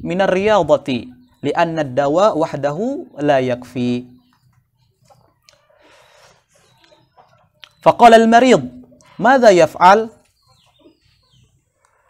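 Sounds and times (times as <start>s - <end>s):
faint chicken clucking: 0.0s - 12.0s.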